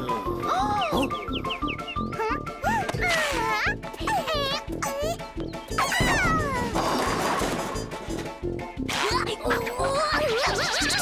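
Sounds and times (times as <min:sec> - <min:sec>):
background music: 0:00.0 - 0:11.0
cartoon squeaky vocal cry: 0:03.0 - 0:06.7.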